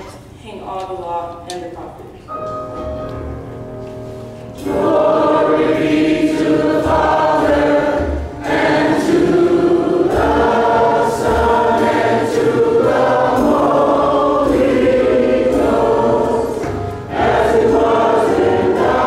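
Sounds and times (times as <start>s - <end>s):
gospel choir singing: 4.6s - 19.0s.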